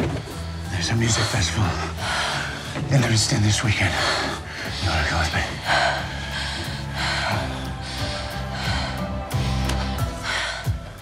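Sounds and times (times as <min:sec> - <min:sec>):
soft background music: 0:00.0 - 0:11.0
person breathing heavily and gasping: 0:03.9 - 0:11.0.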